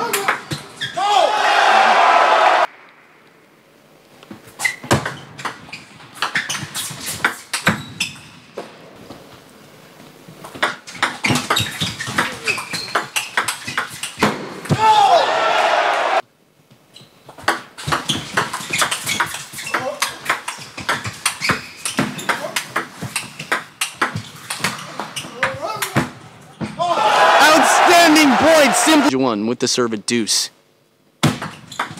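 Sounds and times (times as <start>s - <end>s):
crowd shouting and cheering: 1.0s - 2.7s, 14.7s - 16.2s, 26.8s - 29.2s.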